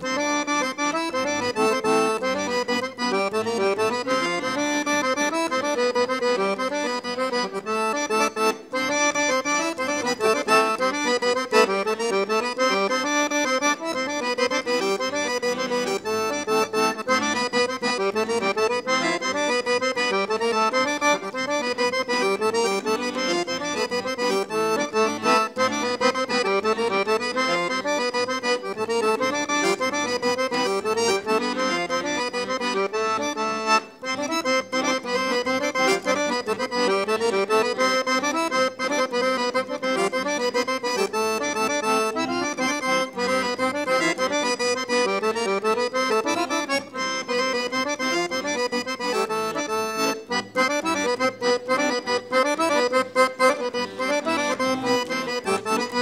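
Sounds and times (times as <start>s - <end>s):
accordion playing folk dance tune: 0.0s - 56.0s.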